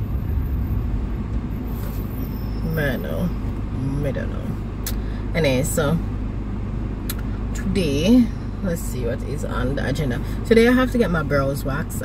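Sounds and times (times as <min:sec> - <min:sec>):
car engine rumble: 0:00.0 - 0:12.0
road noise in car cabin: 0:00.0 - 0:12.0.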